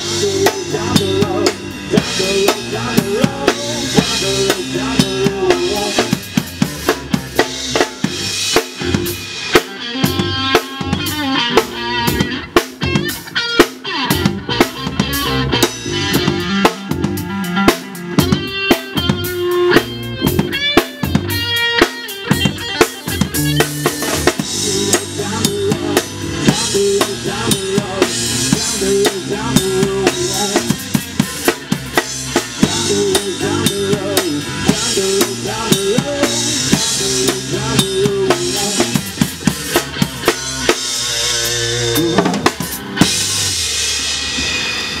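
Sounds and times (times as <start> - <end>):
bass guitar: 0.0 - 45.0
drum kit beat: 0.0 - 45.0
electric guitar notes: 0.0 - 45.0.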